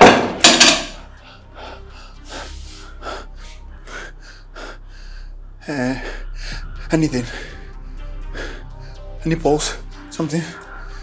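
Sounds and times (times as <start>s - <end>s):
person gasping and breathing hard: 1.1s - 9.1s.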